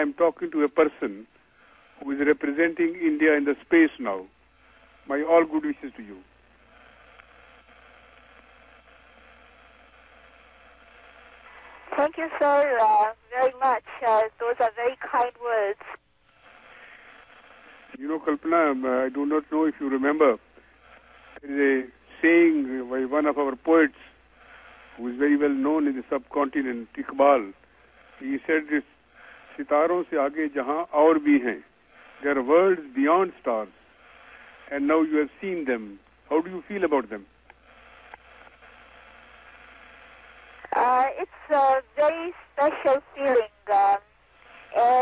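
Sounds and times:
faint radio link hiss: 0.0 - 45.0.

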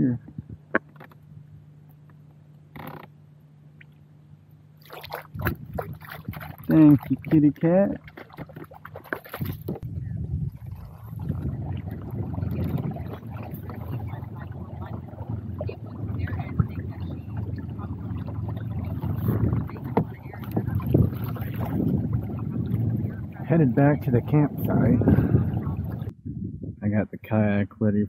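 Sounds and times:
paddle splashing water: 4.8 - 9.8, 10.5 - 26.1.

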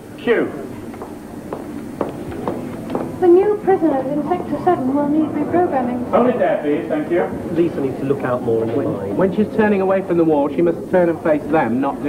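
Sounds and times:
footsteps on hard floor: 0.9 - 3.2.

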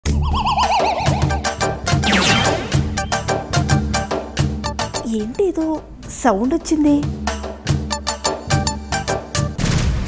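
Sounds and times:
bass line: 0.0 - 4.1
warbling tone: 0.1 - 3.3
sharp percussion hits: 0.2 - 4.6.

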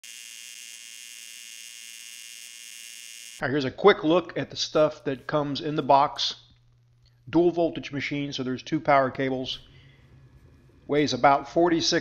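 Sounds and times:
welding arc buzzing: 0.0 - 3.4.

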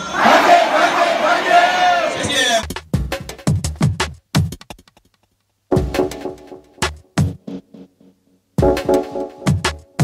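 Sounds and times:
synth music: 8.6 - 10.0.

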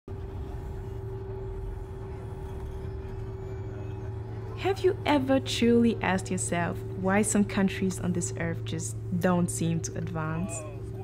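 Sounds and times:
constant humming tone: 0.1 - 11.0
steady low rumble: 0.1 - 11.0.

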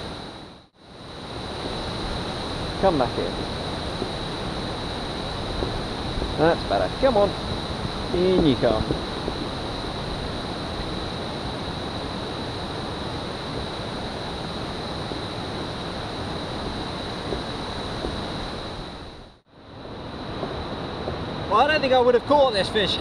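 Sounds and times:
wind on microphone: 0.0 - 21.6
thin high whine: 0.0 - 23.0.

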